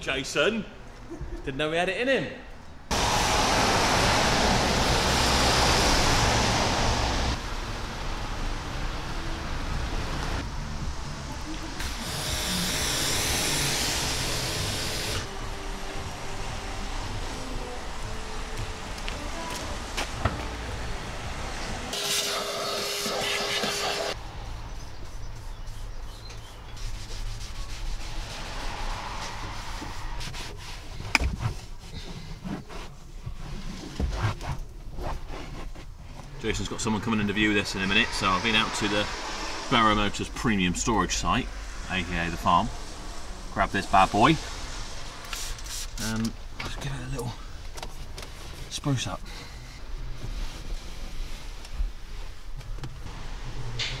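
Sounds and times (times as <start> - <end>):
car tyres hissing on wet road: 2.9 - 22.0, 27.0 - 31.0, 36.5 - 47.0.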